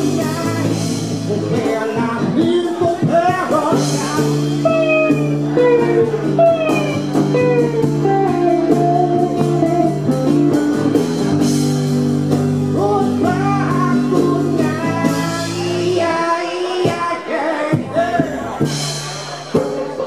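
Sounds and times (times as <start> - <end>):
bass guitar line: 0.0 - 20.0
guitar: 0.0 - 20.0.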